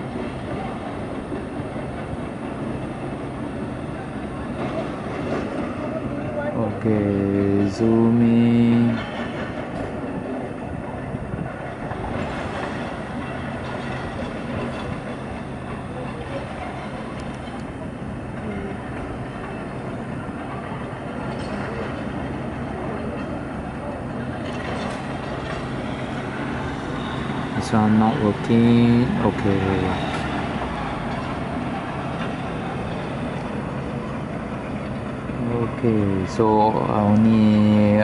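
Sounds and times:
construction machinery drone: 0:00.0 - 0:38.0.

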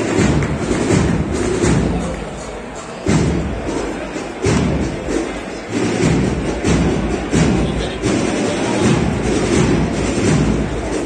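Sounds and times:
deep bass drum beats: 0:00.0 - 0:11.0
procession band music: 0:03.0 - 0:11.0.

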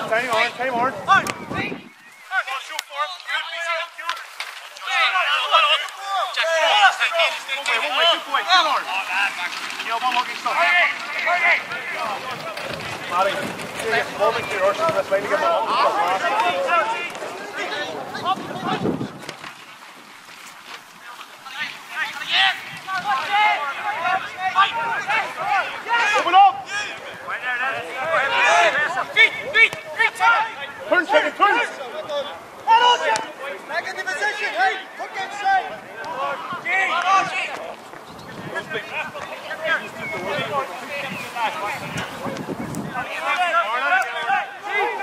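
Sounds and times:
footballers shouting and calling: 0:00.0 - 0:45.0.

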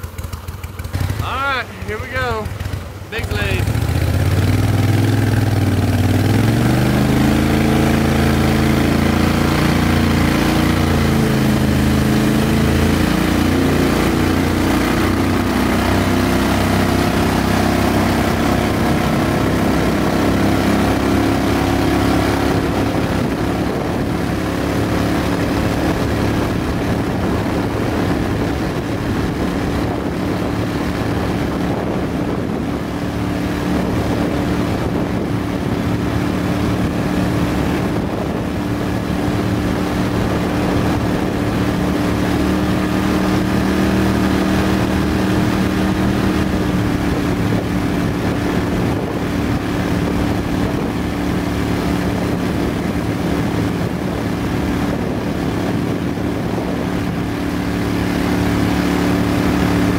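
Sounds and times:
boat motor revving: 0:00.0 - 0:59.9.

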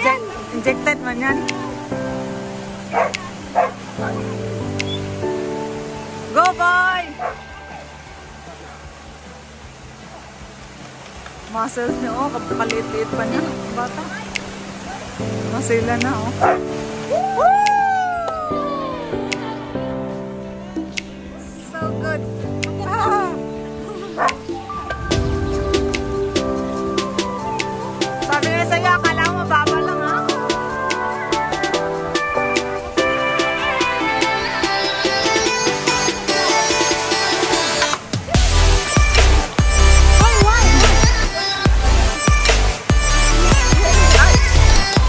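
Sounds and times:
music with long held notes: 0:00.0 - 0:45.0
dog barking: 0:02.9 - 0:04.3, 0:07.2 - 0:07.4, 0:16.4 - 0:16.7, 0:24.2 - 0:24.4.

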